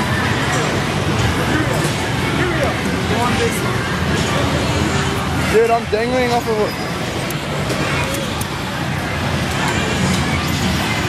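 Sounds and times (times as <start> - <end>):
crowd chatter: 0.0 - 11.0
faint voices: 0.0 - 11.0.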